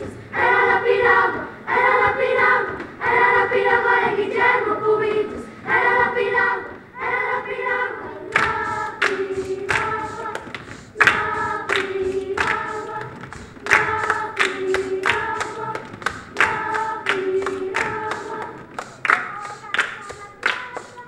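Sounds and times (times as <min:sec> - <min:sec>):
children's choir singing: 0:00.0 - 0:21.0.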